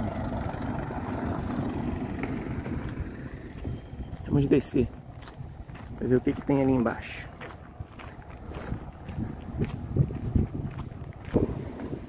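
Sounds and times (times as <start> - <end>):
car rumbling on cobblestones: 0.0 - 12.0
wind on microphone: 0.5 - 6.5, 7.6 - 12.0.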